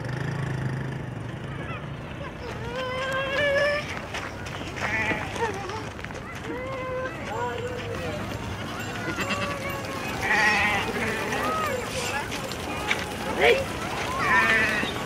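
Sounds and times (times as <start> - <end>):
sheep bleating: 4.8 - 5.3, 9.1 - 11.8, 13.3 - 15.0.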